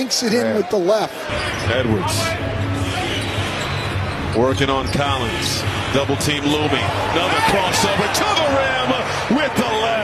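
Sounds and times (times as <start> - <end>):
arena crowd noise: 0.0 - 10.0.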